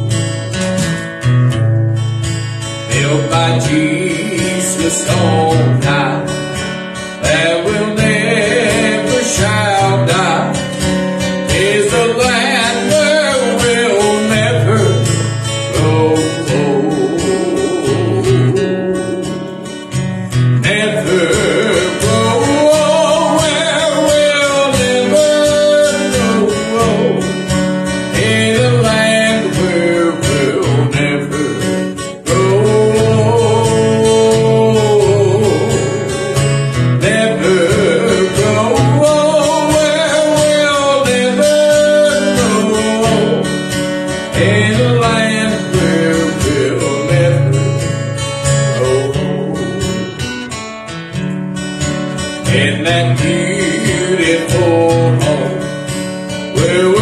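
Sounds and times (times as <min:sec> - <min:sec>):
strummed acoustic guitar: 0:00.0 - 0:57.0
man singing a gospel hymn: 0:02.9 - 0:06.6, 0:07.2 - 0:10.8, 0:11.4 - 0:19.8, 0:20.6 - 0:43.6, 0:44.2 - 0:50.2, 0:52.4 - 0:57.0.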